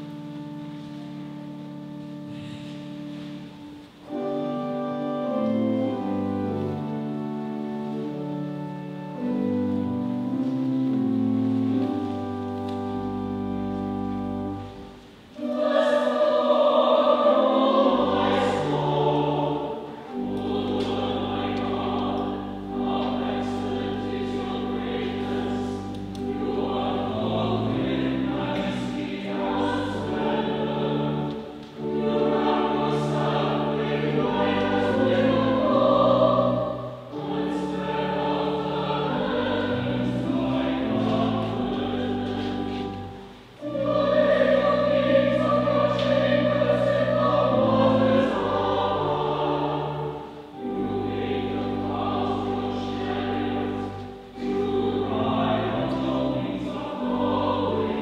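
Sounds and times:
choir singing a hymn: 0.0s - 58.0s
organ accompaniment: 0.0s - 58.0s.

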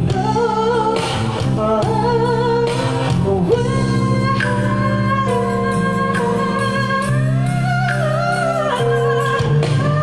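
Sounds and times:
band accompaniment: 0.0s - 10.0s
person singing pop ballad: 0.0s - 10.0s.

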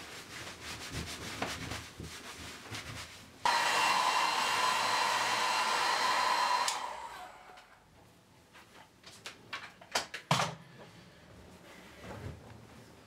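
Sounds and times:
towel rubbing hair: 0.0s - 6.6s
hair dryer blowing: 3.5s - 7.8s.

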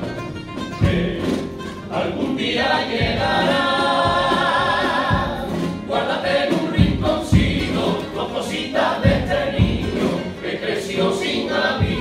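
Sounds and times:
guitars: 0.0s - 12.0s
low drum strokes: 0.8s - 8.2s, 9.0s - 10.3s, 11.7s - 12.0s
male group singing in harmony: 0.8s - 12.0s.

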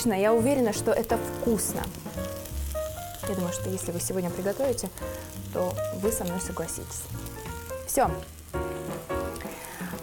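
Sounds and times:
background music with held notes: 0.0s - 10.0s
frying pan sizzling: 0.0s - 10.0s.

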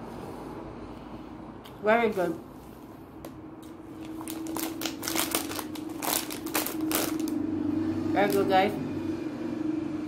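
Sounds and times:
person crunching pretzels: 3.9s - 7.4s.

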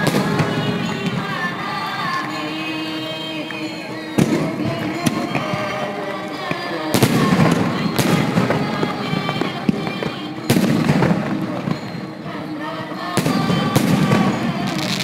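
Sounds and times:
fireworks bangs: 0.0s - 15.0s
music with singing: 0.0s - 15.0s.

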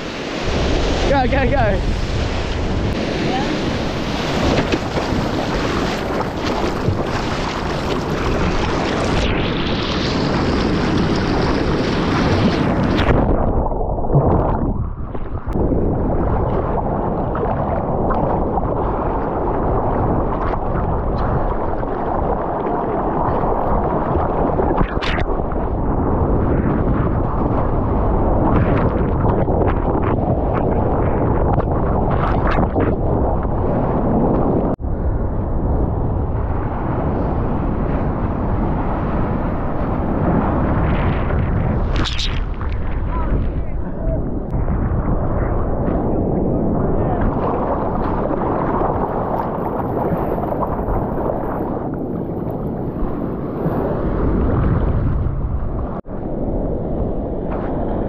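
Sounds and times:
water splashing against camera: 0.0s - 15.6s, 41.2s - 46.1s
sea water rushing: 0.0s - 34.8s, 35.7s - 58.0s
wind: 0.0s - 58.0s.

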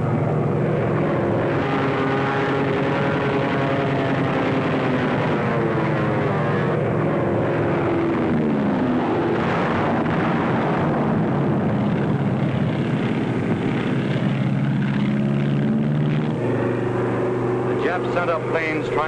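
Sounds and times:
propeller aircraft engines droning: 0.0s - 19.0s.

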